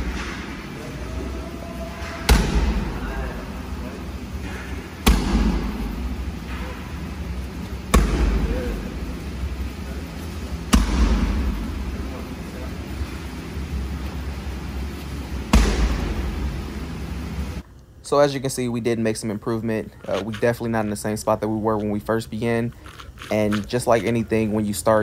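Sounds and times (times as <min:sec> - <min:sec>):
kicks smacking pads: 0:02.3 - 0:03.0, 0:05.0 - 0:06.0, 0:07.9 - 0:08.6, 0:10.7 - 0:11.8, 0:15.5 - 0:16.5.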